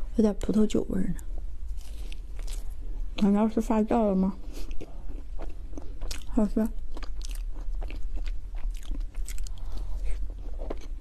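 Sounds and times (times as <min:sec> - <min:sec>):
steady low hum: 0:00.0 - 0:11.0
person chewing cake: 0:01.6 - 0:03.4, 0:04.4 - 0:11.0.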